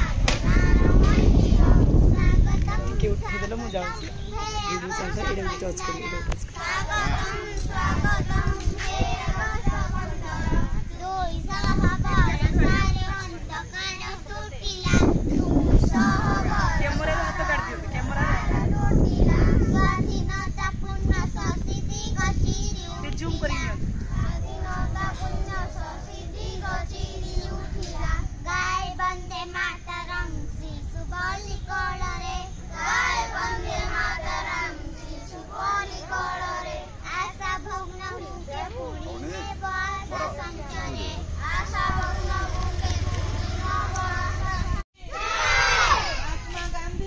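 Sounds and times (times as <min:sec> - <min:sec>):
children singing in unison: 0:00.0 - 0:22.9, 0:24.0 - 0:46.6
steady low rumble: 0:00.0 - 0:44.9.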